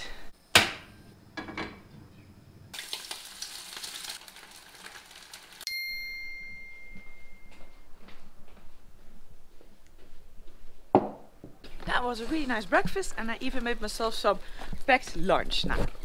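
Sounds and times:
food sizzling in hot oil: 0:02.7 - 0:05.7
bright ding: 0:05.7 - 0:07.8.

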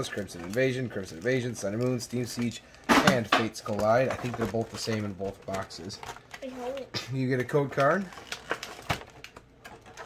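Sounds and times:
packaging clicks and taps: 0:01.6 - 0:06.9.

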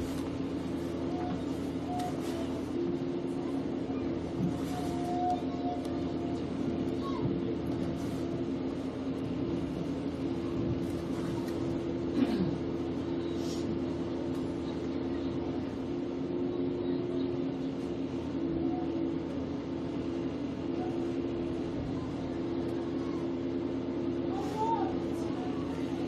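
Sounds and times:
low mechanical hum: 0:00.0 - 0:26.0.

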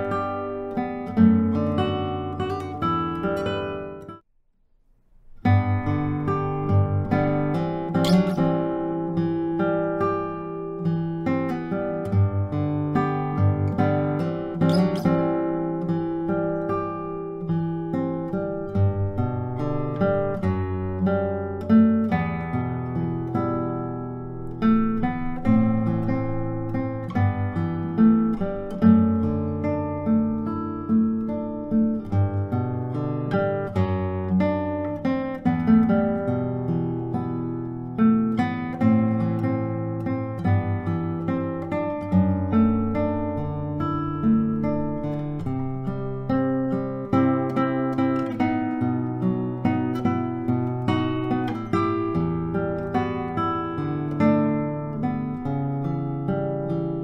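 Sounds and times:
classical guitar fingerstyle: 0:00.0 - 0:04.3, 0:05.1 - 0:57.0.

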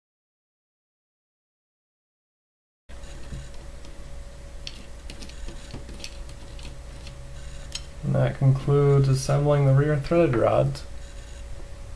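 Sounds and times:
steady low hum: 0:02.9 - 0:11.9.

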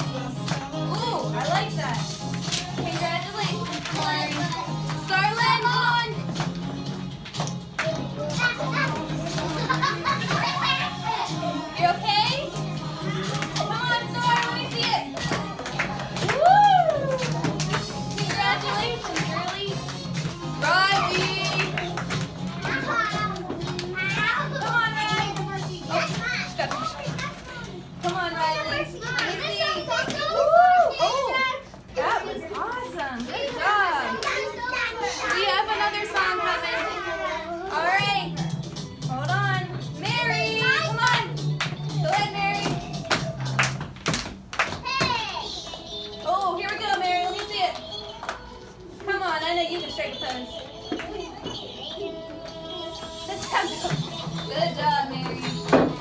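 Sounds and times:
children chattering: 0:07.9 - 0:15.6, 0:22.5 - 0:38.5, 0:44.8 - 0:56.0.

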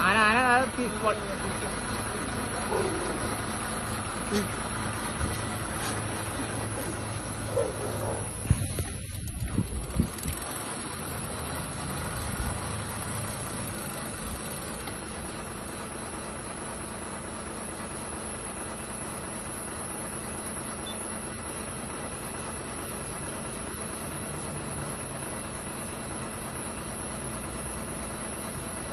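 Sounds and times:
vehicle engine idling: 0:00.0 - 0:28.9.

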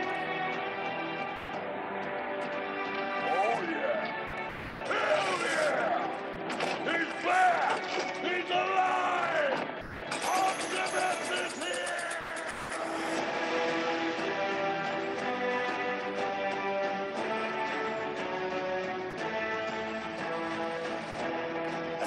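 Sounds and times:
film music: 0:00.0 - 0:22.0.

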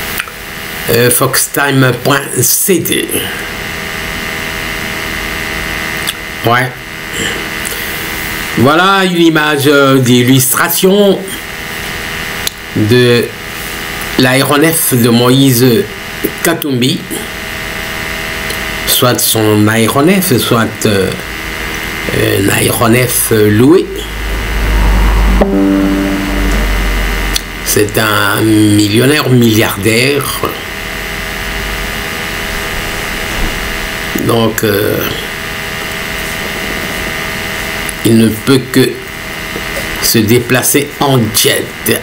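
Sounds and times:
mechanical hum with high whine: 0:00.0 - 0:42.0
steady low rumble: 0:23.2 - 0:28.9
held ringing musical note: 0:24.3 - 0:28.6.

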